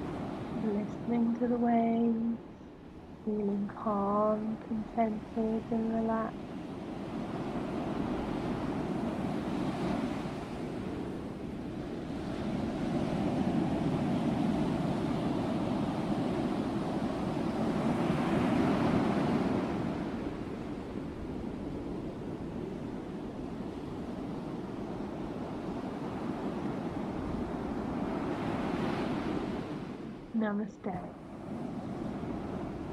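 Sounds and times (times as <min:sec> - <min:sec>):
sea waves breaking on beach: 0:06.4 - 0:30.3.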